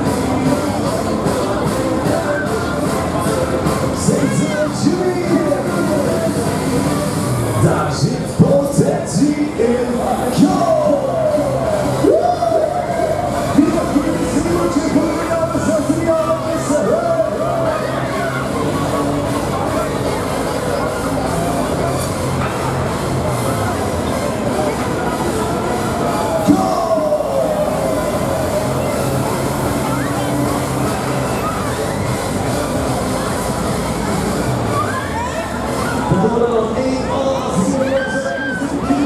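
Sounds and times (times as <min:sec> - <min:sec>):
riders' voices: 0:00.0 - 0:39.0
thrill ride mechanical rumble: 0:00.0 - 0:39.0.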